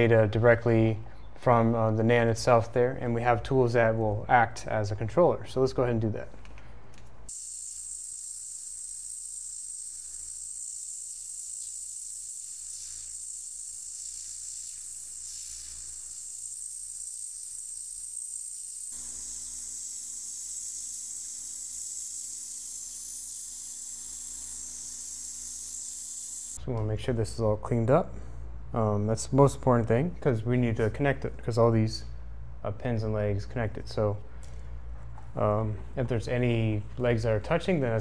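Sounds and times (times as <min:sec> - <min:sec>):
hot air station hissing: 0:07.3 - 0:26.6.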